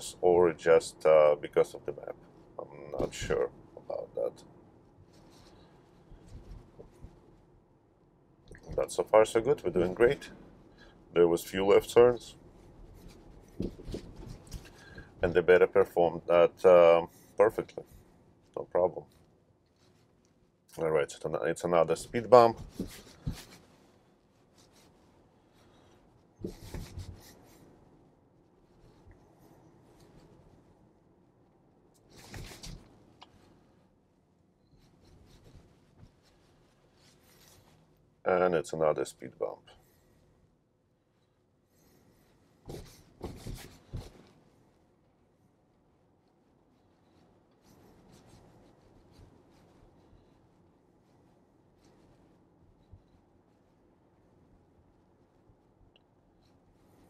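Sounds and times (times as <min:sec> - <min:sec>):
soft rustles and clicks: 0:00.0 - 0:57.0.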